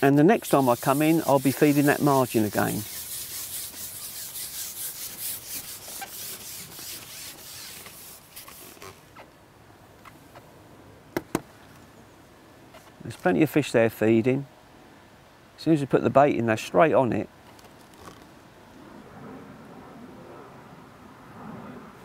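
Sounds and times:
rubbing and scraping: 0.0 - 9.2.

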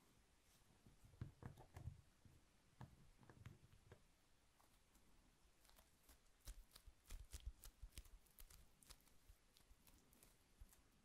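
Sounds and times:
faint sharp clicks and taps: 0.8 - 11.0.

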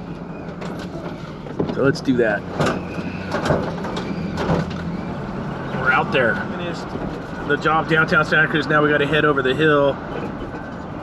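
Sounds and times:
engine and road drone: 0.0 - 11.0.

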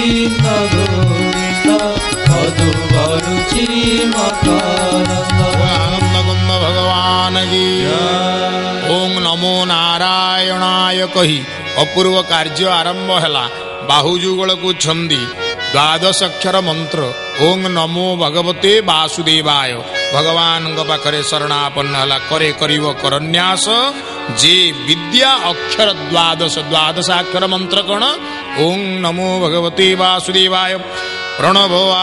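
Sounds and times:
men singing a devotional chant: 0.0 - 11.3
harmonium drone: 0.0 - 32.0
man singing a devotional chant: 0.0 - 32.0.

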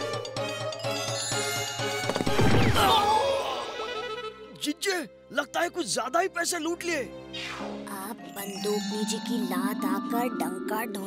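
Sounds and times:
background music: 0.0 - 11.0
cartoon crash impact: 2.1 - 3.3.

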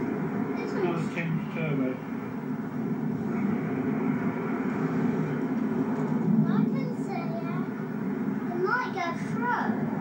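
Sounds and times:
diesel train rumbling: 0.0 - 10.0.

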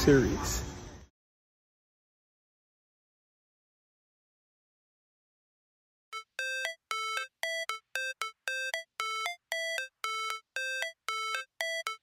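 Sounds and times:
repeated two-note music figure: 6.2 - 12.0.

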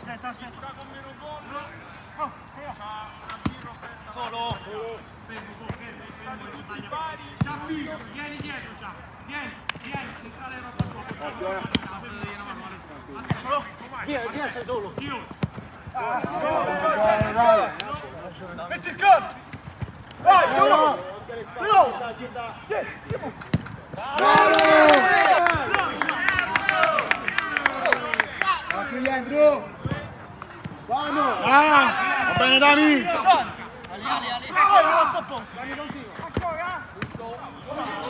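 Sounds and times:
players shouting: 0.0 - 38.0.

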